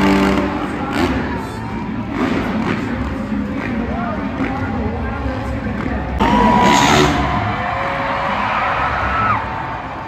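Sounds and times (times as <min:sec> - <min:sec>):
dirt bike engines revving: 0:00.0 - 0:10.0.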